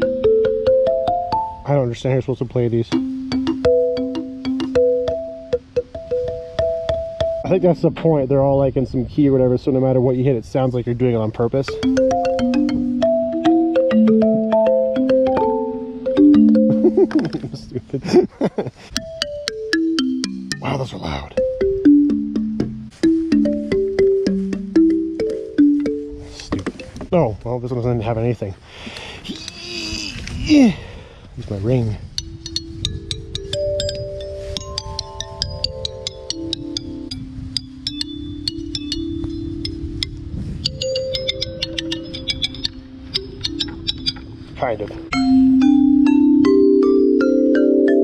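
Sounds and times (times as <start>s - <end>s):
metal ring tapping bars: 2.8s - 7.6s, 19.0s - 27.2s, 32.1s - 44.4s
metallophone descending run: 11.7s - 18.0s, 32.1s - 48.0s.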